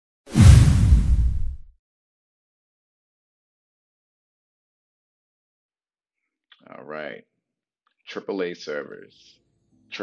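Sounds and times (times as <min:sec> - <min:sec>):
whoosh with deep boom: 0:00.3 - 0:01.7.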